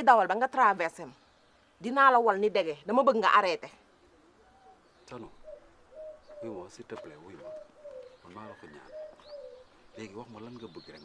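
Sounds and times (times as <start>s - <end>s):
dove cooing: 3.8s - 10.7s
man speaking: 6.4s - 7.6s, 8.2s - 9.0s, 10.0s - 11.0s.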